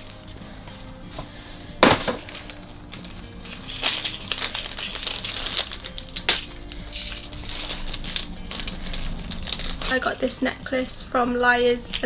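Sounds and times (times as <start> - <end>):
wrapping rustling and crinkling: 1.8 - 10.4
necklace clicks and clinks: 3.5 - 8.7.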